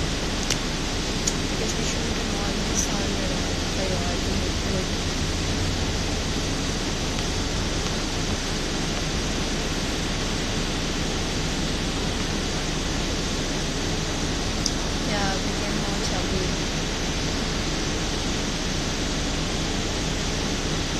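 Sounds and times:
low hum: 0.0 - 20.9
steady rushing noise: 0.0 - 20.9
small click: 0.4 - 0.6.

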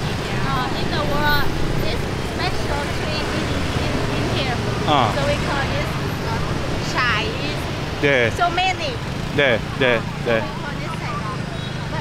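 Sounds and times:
scooter and car traffic rumble: 0.0 - 12.0
voices: 0.0 - 12.0.

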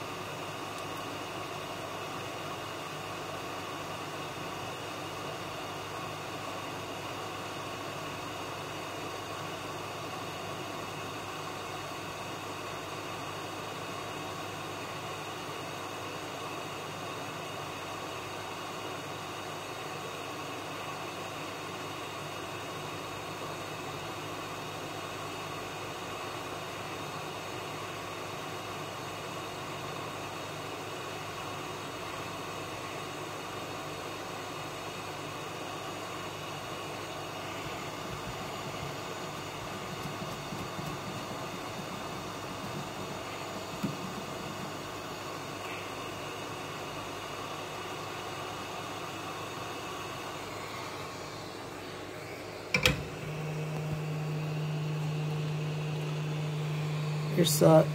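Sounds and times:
hot-air station blowing: 34.3 - 57.9.

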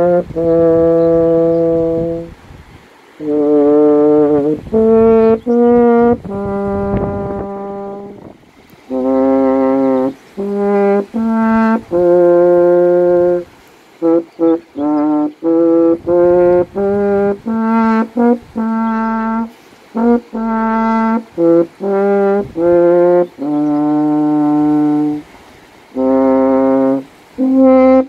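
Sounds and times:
french horn long note: 0.0 - 28.0.

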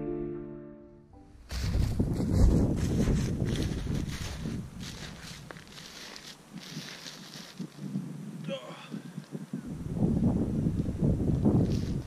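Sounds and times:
footsteps crunching on snow: 1.3 - 8.0, 11.6 - 12.0
wind rumbling on microphone: 1.4 - 12.0.

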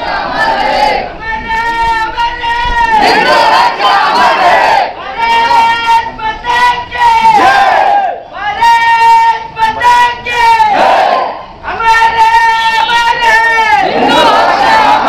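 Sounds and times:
crowd shouting back: 0.2 - 15.0.

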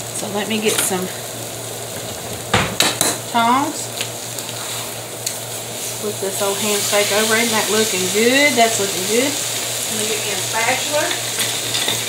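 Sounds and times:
food sizzling on a griddle: 0.0 - 12.0
metal tongs clattering: 11.1 - 12.0.

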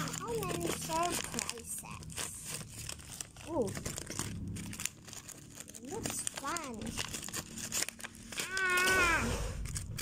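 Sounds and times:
paper wrapper crinkling: 0.0 - 10.0.

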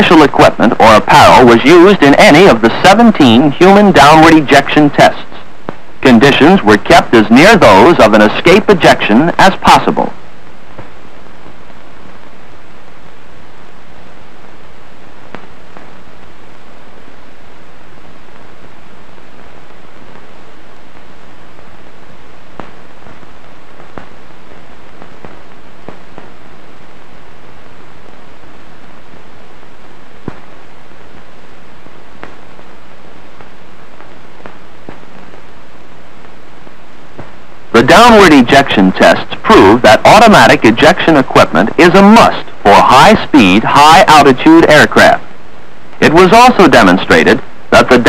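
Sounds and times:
steady hiss: 0.0 - 48.0
clicks and pops: 32.2 - 32.7.

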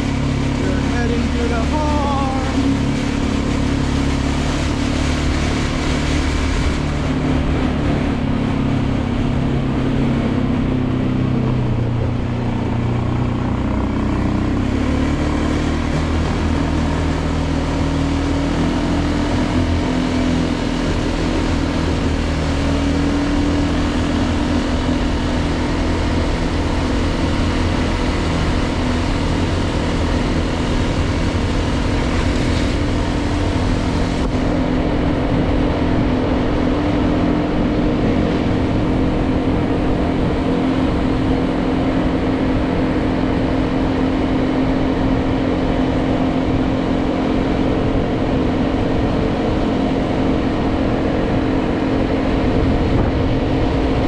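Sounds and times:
atv engine running: 0.0 - 54.0
road noise: 0.0 - 54.0.

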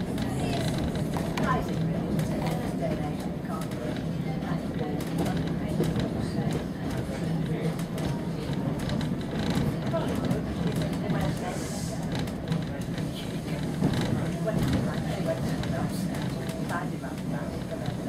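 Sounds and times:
railway carriage rumble: 0.0 - 18.0.

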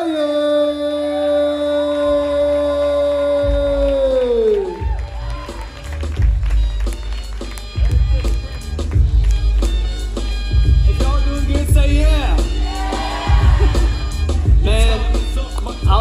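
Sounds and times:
heavy bass beat with drum hits: 3.4 - 4.2, 7.7 - 16.0.

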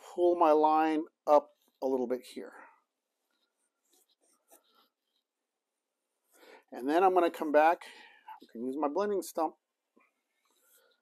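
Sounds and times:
pencil scratching on paper: 3.3 - 5.3.

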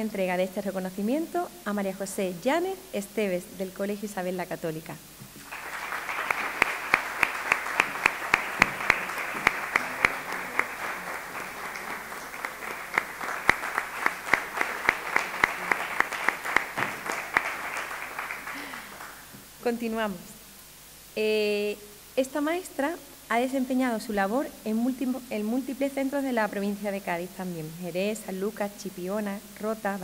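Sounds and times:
sharp individual claps: 5.3 - 19.3
audience applauding: 5.4 - 19.3.

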